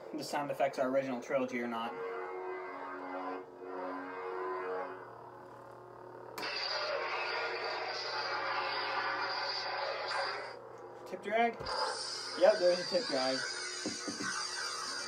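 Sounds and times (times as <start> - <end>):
lightsaber hum: 0.0 - 15.0
loud crackling buzz: 2.0 - 10.8.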